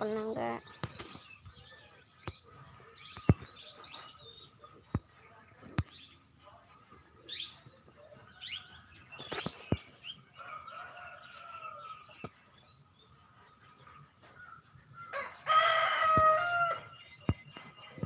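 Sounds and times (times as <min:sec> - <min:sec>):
small birds chirping: 0:00.0 - 0:18.0
rooster crowing: 0:15.1 - 0:16.9.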